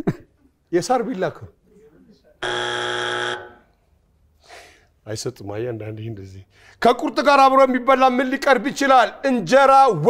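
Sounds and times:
wrong-answer buzzer: 0:02.4 - 0:03.7.

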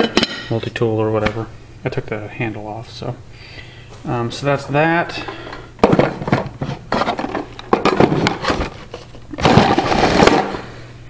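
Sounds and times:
wooden boxes knocking and clattering: 0:05.8 - 0:10.6.

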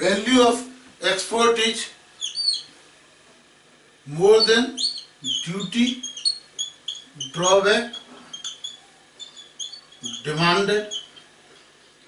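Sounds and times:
marker squeaking on whiteboard: 0:02.2 - 0:02.8, 0:04.1 - 0:12.0.

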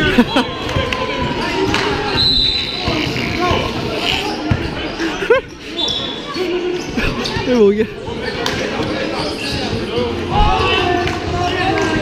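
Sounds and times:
voices of players and spectators: 0:00.0 - 0:12.0.

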